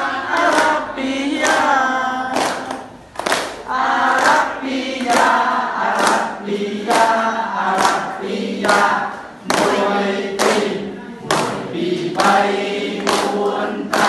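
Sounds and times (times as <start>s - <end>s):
group singing children's song: 0.0s - 14.0s.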